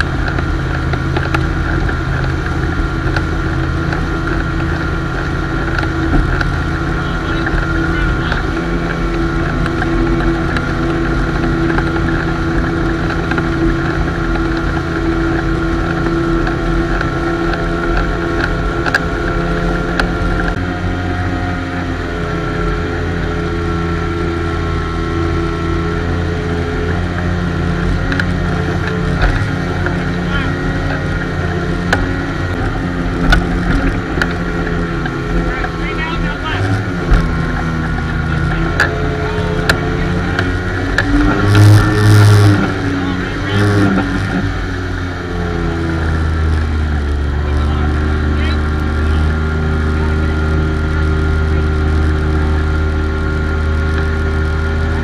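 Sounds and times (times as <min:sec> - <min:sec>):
motorboat engine running: 0:00.0 - 0:55.0
rush of wake and wind: 0:00.0 - 0:55.0.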